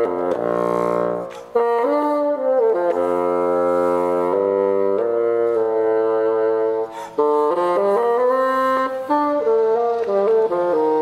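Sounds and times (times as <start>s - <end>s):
bassoon playing low held notes: 0.0s - 11.0s.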